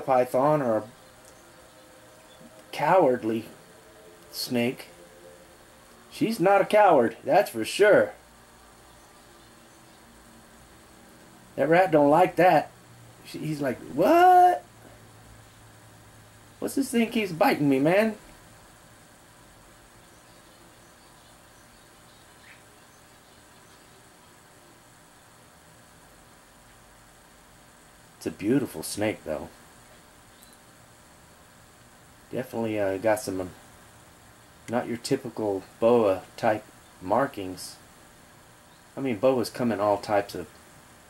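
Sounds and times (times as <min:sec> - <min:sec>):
man speaking: 0:00.0 - 0:01.0, 0:02.7 - 0:03.6, 0:04.3 - 0:05.0, 0:06.1 - 0:08.2, 0:11.6 - 0:14.7, 0:16.6 - 0:18.2, 0:28.2 - 0:29.5, 0:32.3 - 0:33.6, 0:34.7 - 0:37.8, 0:39.0 - 0:40.5
faint steady hiss: 0:00.0 - 0:41.0
faint steady hum: 0:00.0 - 0:41.0.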